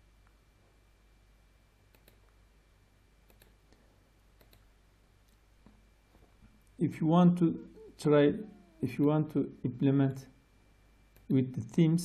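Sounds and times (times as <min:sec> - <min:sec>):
low room hum: 0:00.0 - 0:12.0
computer mouse clicks: 0:01.9 - 0:02.4, 0:03.2 - 0:03.7, 0:04.4 - 0:05.8, 0:11.1 - 0:11.3.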